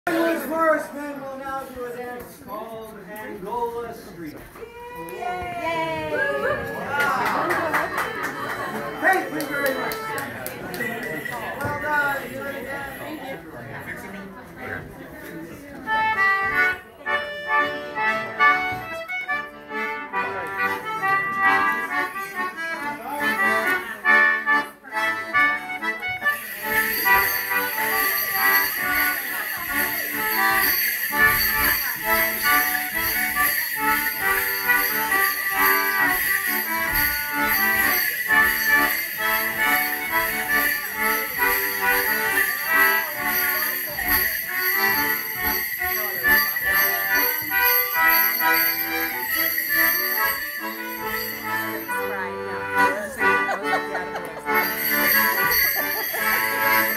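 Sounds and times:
accordion dance tune: 0.1 - 0.9, 7.2 - 13.0, 15.5 - 56.9
leg bells jingling: 7.8 - 13.3, 17.6 - 56.9.

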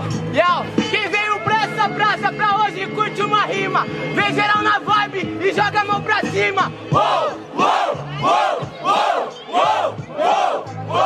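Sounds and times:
music with low bass: 0.0 - 11.0
crowd shouting in rhythm: 6.9 - 11.0.

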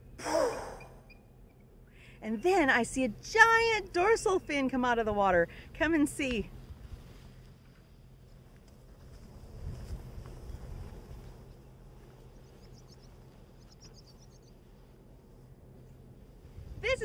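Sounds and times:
faint high bird chirps: 0.0 - 1.6, 12.4 - 14.6
wind rumbling on microphone: 5.0 - 17.0.

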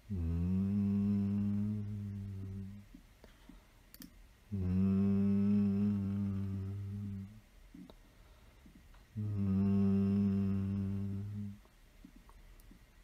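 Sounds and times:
low voice humming nasal tone: 0.0 - 3.0, 4.5 - 7.9, 9.1 - 11.7.

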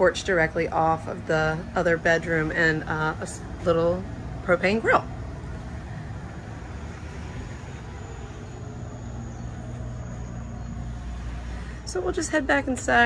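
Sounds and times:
low hum: 0.0 - 13.0
outdoor background noise: 0.0 - 13.0
faint high whine: 0.6 - 12.8.

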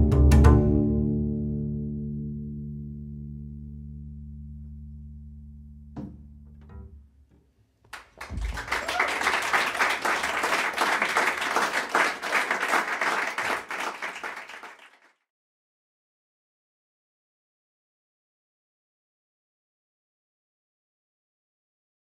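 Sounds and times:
double bass note: 0.0 - 7.2
audience applause: 8.0 - 15.1.

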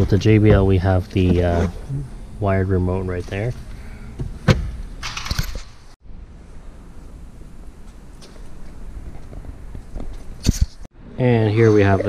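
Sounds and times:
low steady background noise: 0.0 - 12.0.

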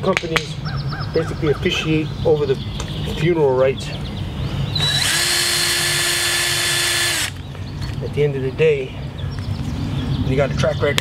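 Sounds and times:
cordless drill running: 4.8 - 7.4.

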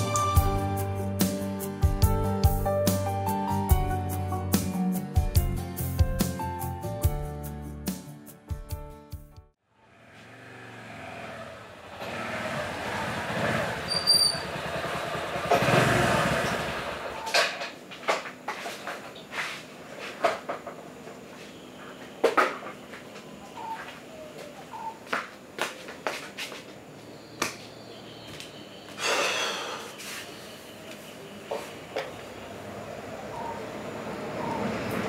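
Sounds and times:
motorcycle engine approaching: 9.7 - 17.4.

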